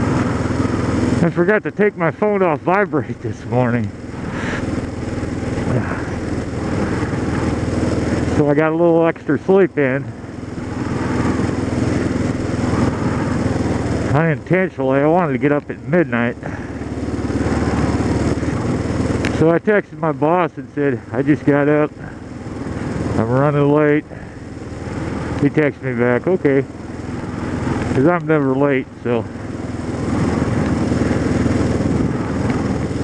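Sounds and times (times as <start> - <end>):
constant rush of noise: 0.0 - 33.0
motorcycle engine running: 0.0 - 33.0
road and wind noise: 0.0 - 33.0.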